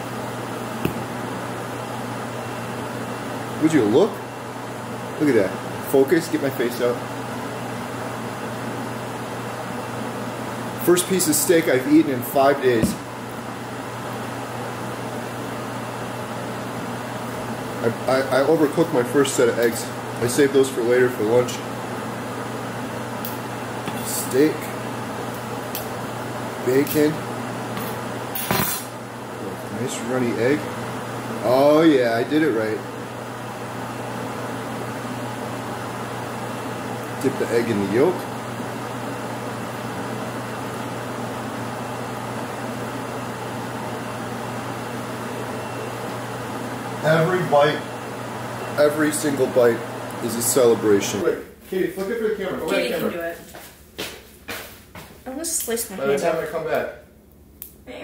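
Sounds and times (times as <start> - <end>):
fan hiss and low hum: 0.0 - 58.0.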